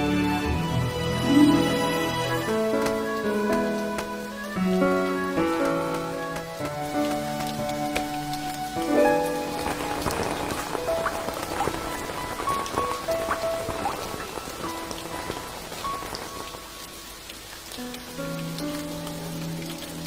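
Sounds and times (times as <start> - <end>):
soft instrumental notes and chords: 0.0 - 12.4
steady rain falling: 0.0 - 20.0.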